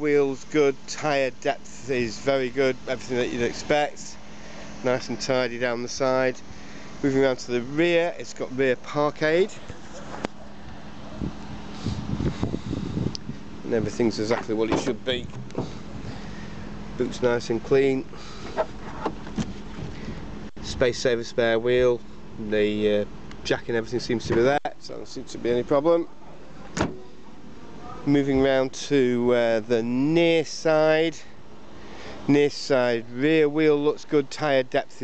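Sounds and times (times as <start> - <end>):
wind rumbling on microphone: 11.1 - 14.0
car boot lid slamming: 26.8 - 27.0.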